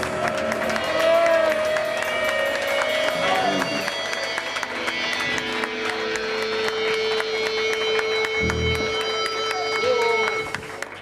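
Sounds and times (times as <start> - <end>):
live rock band playing: 1.6 - 10.7
long held note: 6.8 - 10.6.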